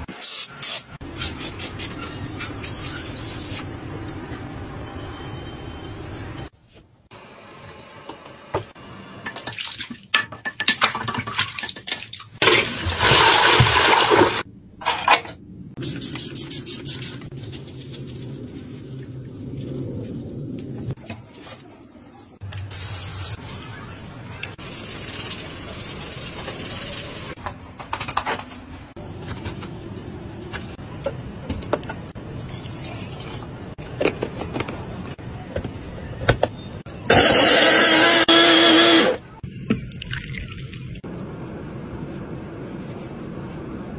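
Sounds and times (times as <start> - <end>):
toilet flushing: 12.4 - 14.5
blender motor running: 37.1 - 39.2.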